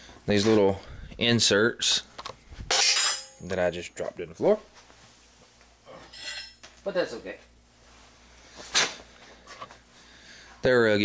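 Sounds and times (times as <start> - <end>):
small steel parts clinking: 2.7 - 3.4, 6.1 - 6.7.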